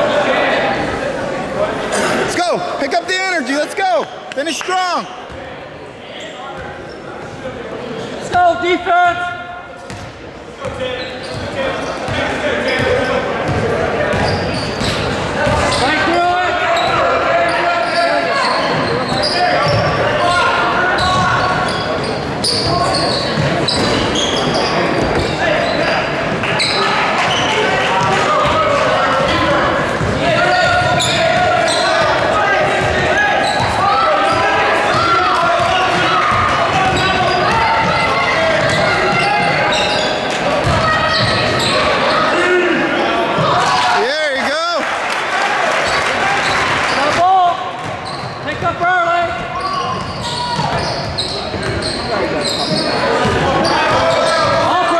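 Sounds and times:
voices calling out echoing: 0.0 - 54.9.

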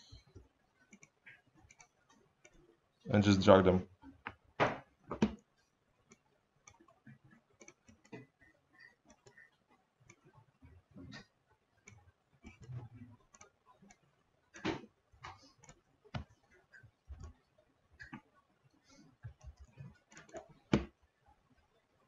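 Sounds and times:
computer mouse clicking: 0.3 - 2.6, 6.1 - 10.3, 11.8 - 14.0, 15.2 - 17.4, 19.2 - 20.9.

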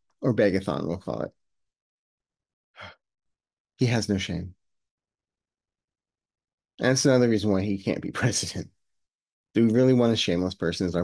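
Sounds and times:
man speaking: 0.2 - 1.3, 3.8 - 4.5, 6.8 - 8.7, 9.6 - 11.0.

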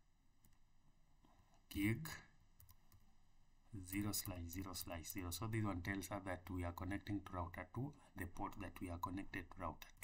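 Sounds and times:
person speaking: 1.6 - 2.5, 3.7 - 10.0.

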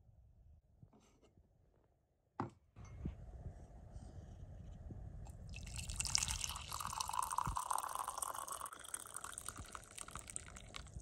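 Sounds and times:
coffee pouring into mug: 5.5 - 11.0.

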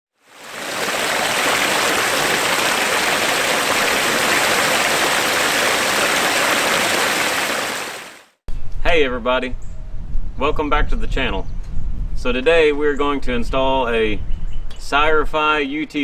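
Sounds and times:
water rushing over rocks: 0.2 - 8.3.

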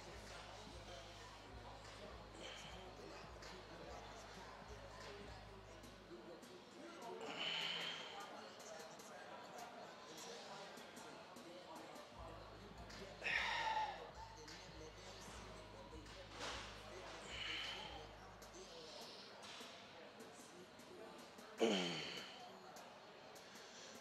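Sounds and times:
faint gym room sound: 0.0 - 24.0
forceful breaths: 16.4 - 18.0.

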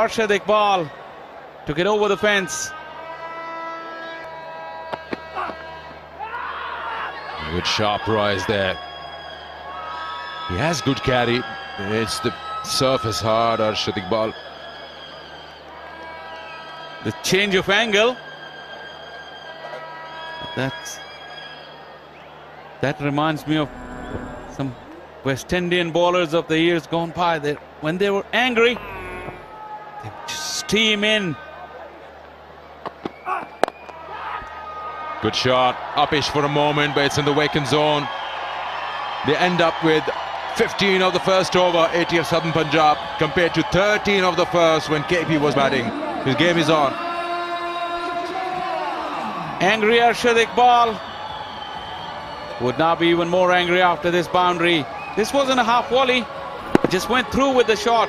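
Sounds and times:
stadium background drone: 23.0 - 26.0, 55.3 - 58.0
cricket bat striking ball: 56.7 - 57.2.

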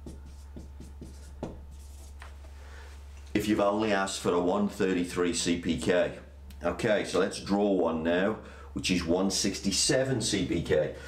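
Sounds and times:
marker pen writing on paper: 0.0 - 2.2
steady low hum: 0.0 - 11.0.

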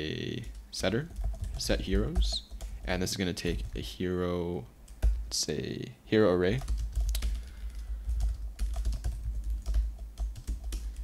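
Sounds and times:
low steady hum: 0.0 - 11.0
typing on computer keyboard: 0.4 - 2.8, 6.6 - 11.0.

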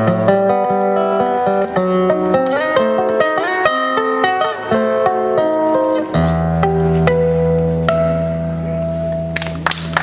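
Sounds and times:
audience applause: 9.4 - 10.0.

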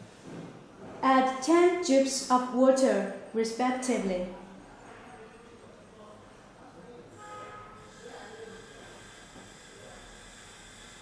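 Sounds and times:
faint high electronic whine: 4.3 - 11.0.

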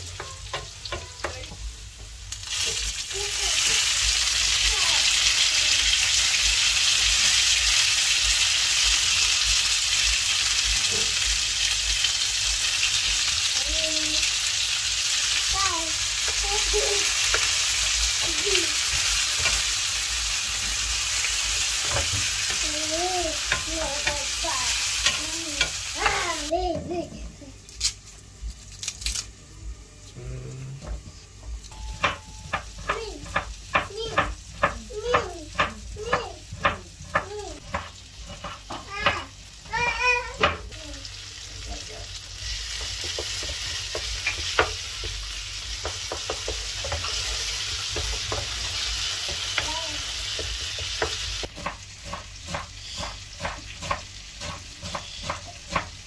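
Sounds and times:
vegetables sizzling in a frying pan: 0.0 - 56.0
wooden spatula knocking on pan: 31.8 - 40.7, 42.8 - 45.2, 45.8 - 49.7, 50.3 - 56.0.

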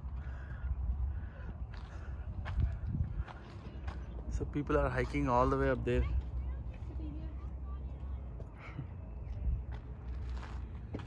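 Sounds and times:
wind rumble on microphone: 0.0 - 4.8.

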